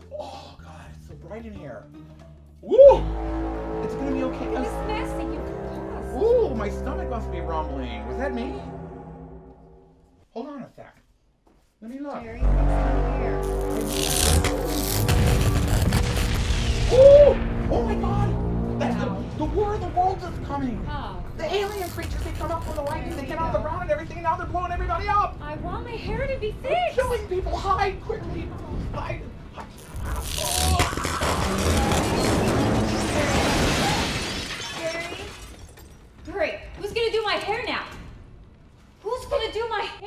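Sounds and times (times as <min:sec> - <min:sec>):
background music: 0:00.0 - 0:10.2, 0:12.2 - 0:28.6
explosions: 0:12.4 - 0:18.8
debris falling: 0:30.4 - 0:36.3
glass shattering: 0:30.6 - 0:36.2.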